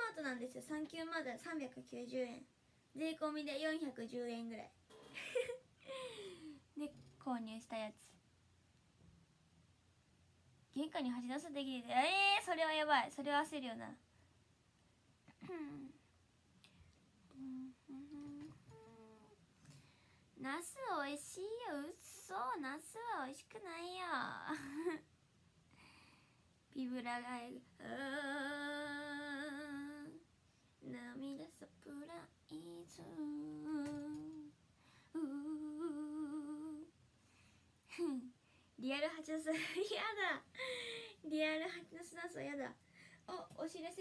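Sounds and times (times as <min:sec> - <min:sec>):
woman humming with closed mouth: 0:15.3 - 0:16.1, 0:17.3 - 0:19.4, 0:32.5 - 0:34.6, 0:35.2 - 0:36.9, 0:37.9 - 0:38.4.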